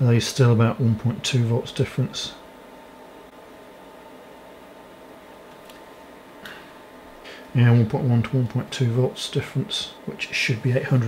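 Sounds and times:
test equipment hum and hiss: 0:00.0 - 0:11.0.

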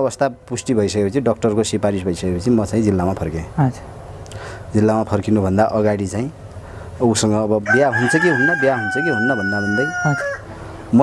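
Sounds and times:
rooster crowing: 0:07.6 - 0:10.8.

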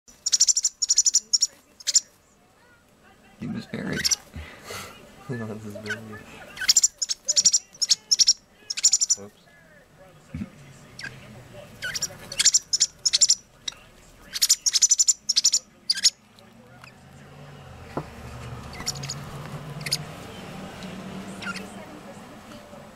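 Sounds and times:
young bird begging chirps: 0:00.1 - 0:02.1, 0:04.0 - 0:04.3, 0:05.8 - 0:09.3, 0:11.8 - 0:16.2, 0:18.7 - 0:20.1, 0:21.4 - 0:21.8.

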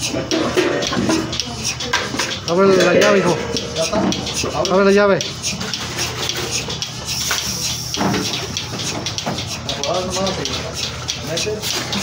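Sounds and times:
scattered clicks: 0:00.0 - 0:12.0.

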